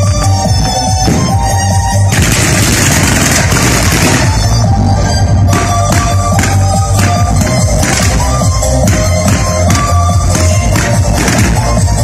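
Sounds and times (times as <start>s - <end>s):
electronic dance music: 0.0s - 12.0s
fireworks crackling and banging: 0.0s - 12.0s.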